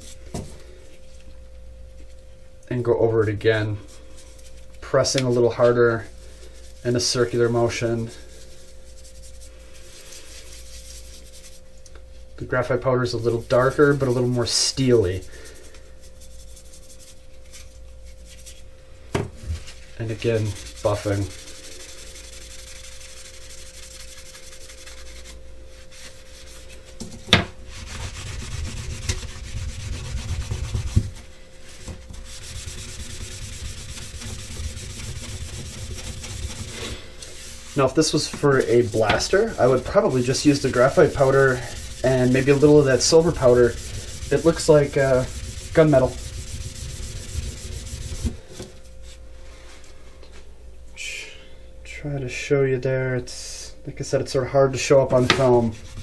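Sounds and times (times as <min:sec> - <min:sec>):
paper towel buffing metal: 0:13.5 - 0:17.7, 0:19.7 - 0:26.7, 0:27.7 - 0:48.7
gloved hands rubbing armor plate: 0:19.6 - 0:27.0, 0:27.7 - 0:49.2.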